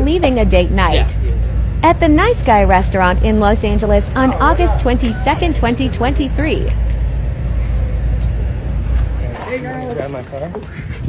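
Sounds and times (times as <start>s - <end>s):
people calling out: 0.0s - 6.9s
low heavy street rumble: 0.0s - 11.0s.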